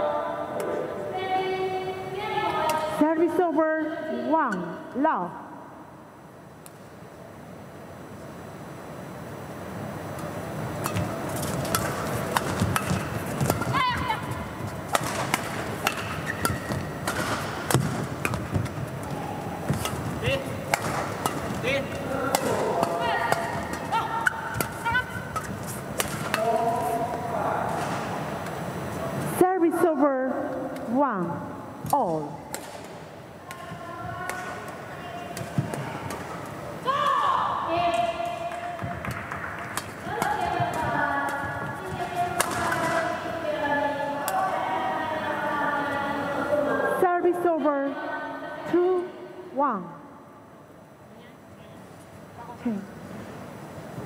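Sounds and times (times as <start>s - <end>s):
rackets striking shuttlecock: 10.8s - 19.0s, 19.6s - 26.6s, 31.8s - 33.6s, 37.9s - 43.2s
shoes squeaking on court: 15.7s - 17.0s.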